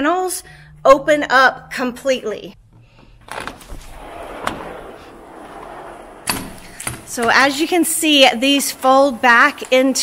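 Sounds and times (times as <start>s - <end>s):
sliding door rolling rumble: 3.2s - 10.0s.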